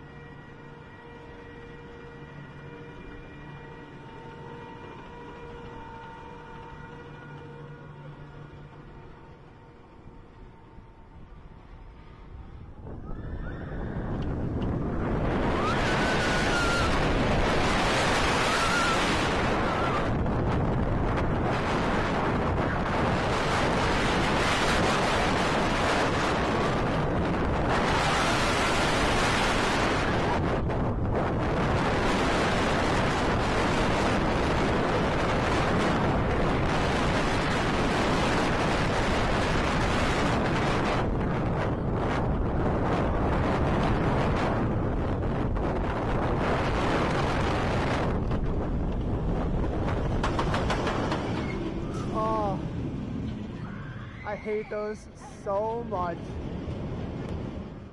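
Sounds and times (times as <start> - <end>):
roller coaster rumbling on track: 0.0 - 57.9
wind rushing over microphone: 9.8 - 57.9.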